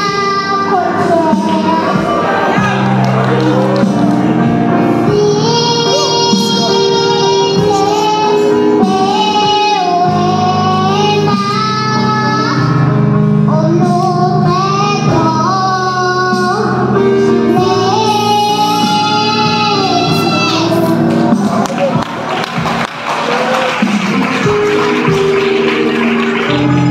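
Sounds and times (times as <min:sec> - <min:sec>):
girl singing into microphone: 0:00.0 - 0:03.0, 0:04.6 - 0:21.6
instrumental backing: 0:00.0 - 0:26.9.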